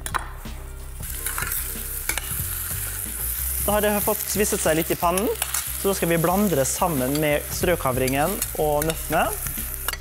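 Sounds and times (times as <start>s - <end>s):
vegetables sizzling in a pan: 0.8s - 10.0s.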